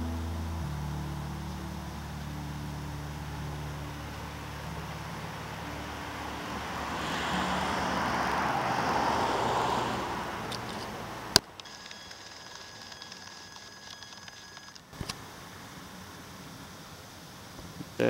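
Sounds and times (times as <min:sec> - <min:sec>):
faint high-pitched tones: 0:00.0 - 0:08.3
rushing noise: 0:00.0 - 0:14.6.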